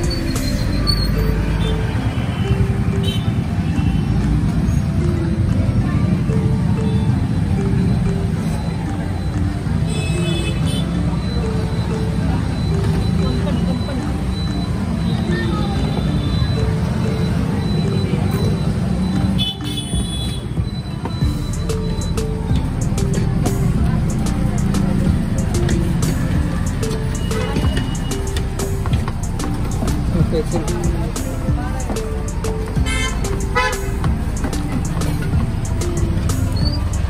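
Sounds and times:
background music melody: 0.0s - 37.0s
street traffic rumble: 0.0s - 37.0s
vehicle horns tooting: 0.3s - 4.1s, 9.9s - 11.0s, 19.3s - 21.0s, 27.1s - 28.5s, 32.8s - 34.0s.

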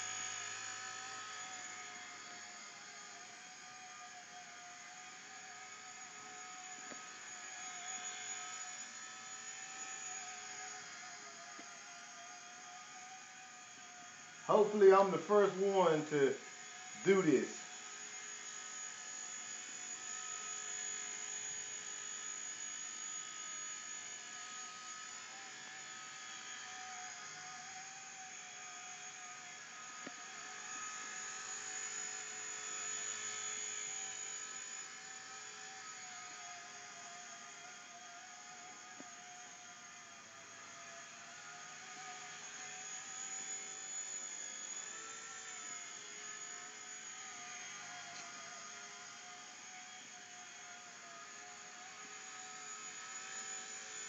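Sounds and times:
rc helicopter rotor whine: 0.0s - 54.0s.

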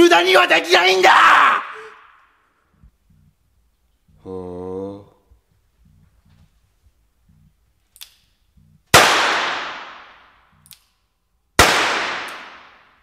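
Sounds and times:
revolver gunshots echoing: 9.0s - 10.3s, 11.6s - 13.0s.

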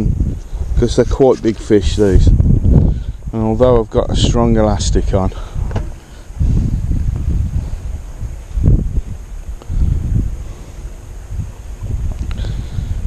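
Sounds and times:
wind buffeting microphone: 0.0s - 13.0s.

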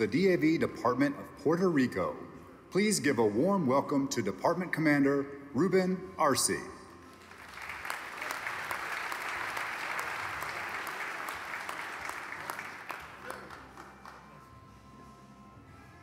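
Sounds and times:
audience applauding: 7.2s - 14.5s.

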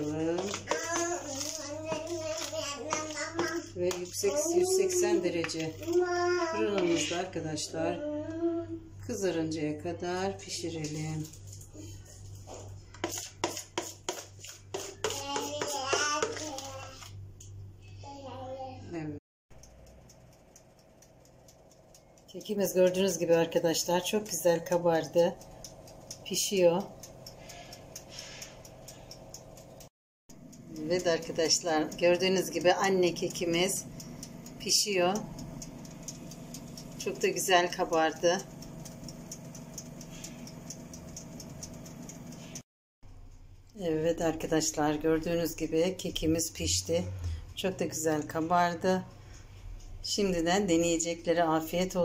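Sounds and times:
child's voice: 0.6s - 5.2s, 5.8s - 7.1s, 7.9s - 8.9s, 15.0s - 17.1s, 17.9s - 19.0s
oven humming: 30.4s - 42.6s
faint ticks: 38.5s - 42.6s.

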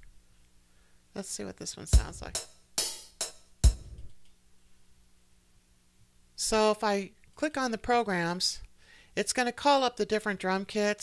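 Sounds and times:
drum machine hits: 1.9s - 4.3s.

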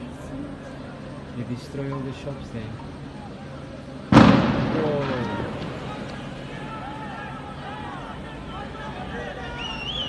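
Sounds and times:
loud explosion echoing: 4.1s - 6.8s
people shouting: 4.8s - 10.0s.

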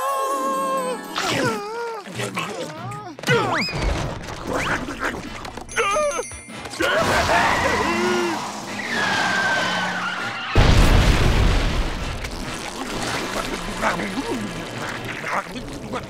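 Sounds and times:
explosion boom with low rumble: 10.6s - 12.2s.

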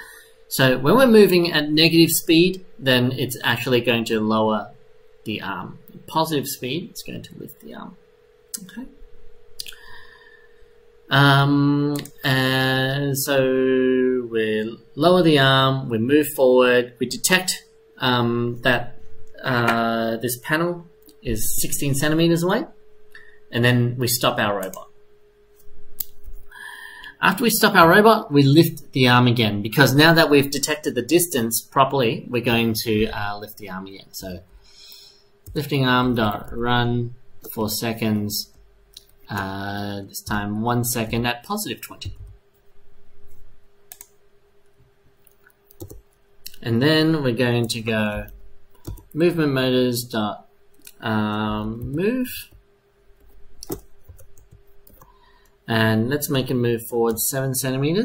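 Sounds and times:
faint steady hum: 0.0s - 58.0s
laptop keyboard clicks: 53.6s - 55.1s.

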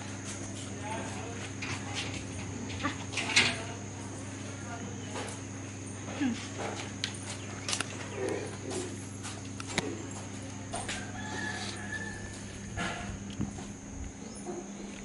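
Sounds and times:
steady low hum: 0.0s - 15.0s
footsteps: 8.6s - 15.0s.

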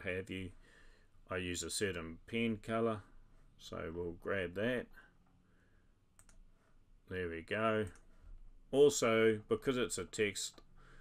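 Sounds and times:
computer mouse clicks: 6.2s - 6.4s.

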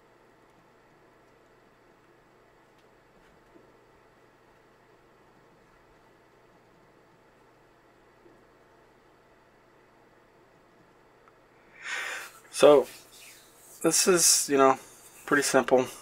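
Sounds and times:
faint room hiss: 0.0s - 16.0s
breath drawn: 11.7s - 13.9s.

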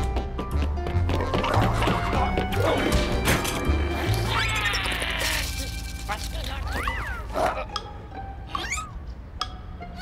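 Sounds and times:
light background music: 0.0s - 10.0s
cartoon character squeal: 6.7s - 7.4s, 8.5s - 8.9s.

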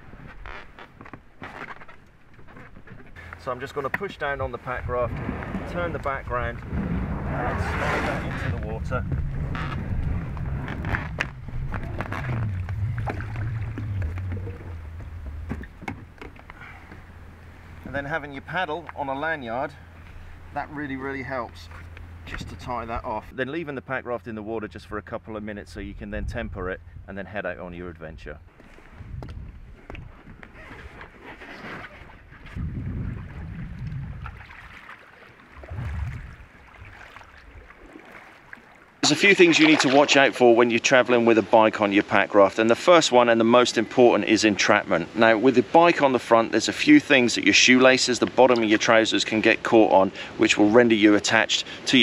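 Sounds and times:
water lapping at hull: 0.0s - 22.6s, 29.9s - 52.0s
paddle splashes: 2.4s - 18.0s, 30.7s - 42.2s
raft dragging rumble: 3.2s - 23.4s.

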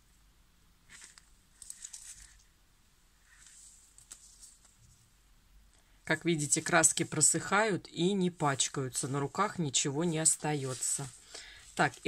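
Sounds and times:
foam ornaments rustling and clicking: 0.9s - 2.6s, 8.6s - 12.0s.

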